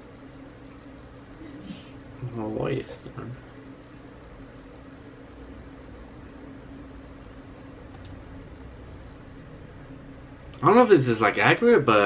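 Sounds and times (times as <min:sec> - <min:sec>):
low electrical hum: 0:00.0 - 0:12.0
faint click: 0:07.9 - 0:08.2.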